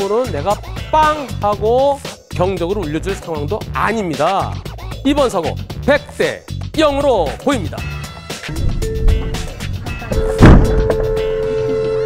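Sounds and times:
car collision crunching impact: 9.1 - 11.1
steady two-note tone: 10.1 - 12.0.

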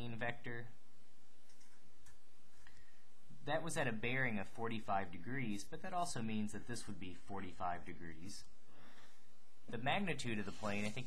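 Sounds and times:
steady low hiss: 0.0 - 11.0
marker scratching on paper: 10.3 - 11.0.

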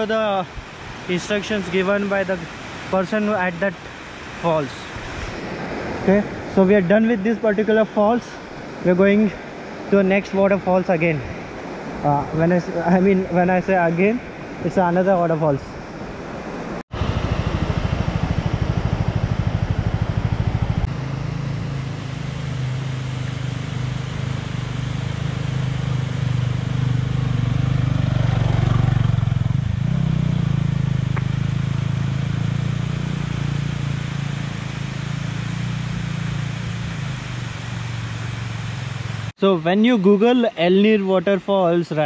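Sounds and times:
motorcycle passing: 16.1 - 39.3
motorcycle engine running: 16.9 - 39.3.

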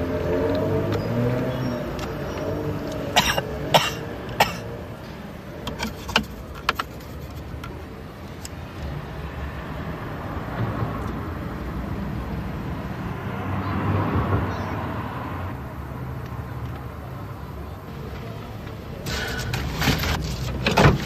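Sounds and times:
car cabin rumble: 18.2 - 21.0.

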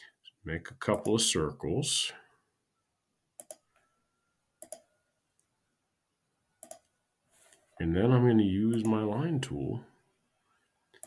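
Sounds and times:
computer mouse clicks: 3.4 - 3.8, 4.6 - 5.5, 6.6 - 6.9.

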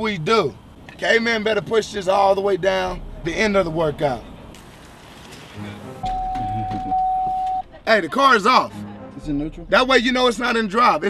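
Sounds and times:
electronic beep: 6.0 - 7.7.

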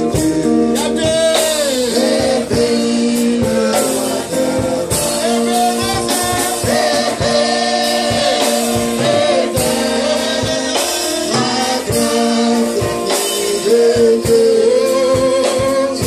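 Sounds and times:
congregation singing gospel song: 0.0 - 16.0
steady beat: 0.0 - 16.0.

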